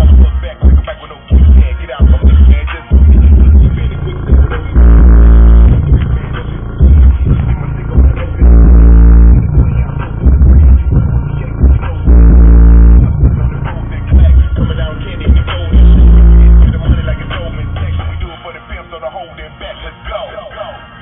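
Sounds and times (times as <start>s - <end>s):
subwoofers playing bass-heavy music: 0.0s - 21.0s.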